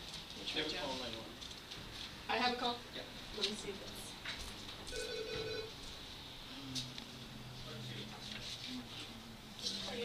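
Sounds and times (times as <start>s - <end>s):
telephone ringing: 4.9s - 5.8s.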